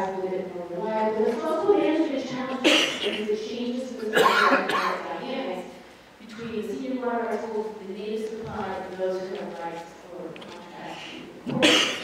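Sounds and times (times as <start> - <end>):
woman speaking: 0.0 - 12.0
cough: 2.6 - 3.2, 4.1 - 5.0, 11.5 - 12.0.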